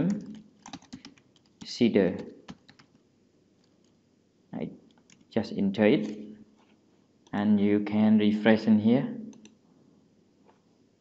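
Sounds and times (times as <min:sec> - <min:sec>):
man speaking: 0:00.0 - 0:00.3, 0:01.6 - 0:02.3, 0:04.6 - 0:06.3, 0:07.3 - 0:09.3
computer mouse clicks: 0:00.0 - 0:03.0, 0:04.9 - 0:05.3, 0:09.3 - 0:09.6.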